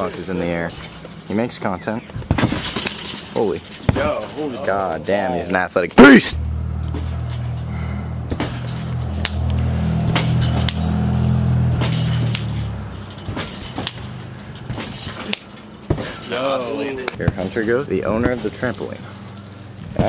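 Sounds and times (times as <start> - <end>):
trampoline thumps and spring jangle: 0.0 - 5.3, 6.2 - 20.0.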